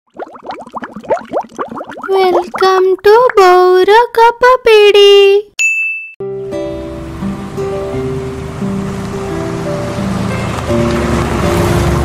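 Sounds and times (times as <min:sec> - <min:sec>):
cartoon bubble bloops: 0:00.1 - 0:03.7.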